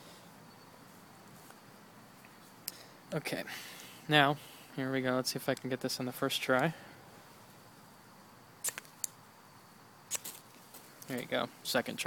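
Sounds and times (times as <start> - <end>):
flint fire starter rasping: 8.6 - 9.2, 10.1 - 11.3.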